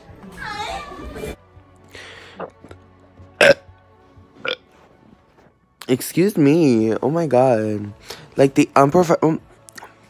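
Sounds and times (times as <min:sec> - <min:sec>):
person burping: 0:02.3 - 0:02.8, 0:03.4 - 0:03.7, 0:04.4 - 0:04.6.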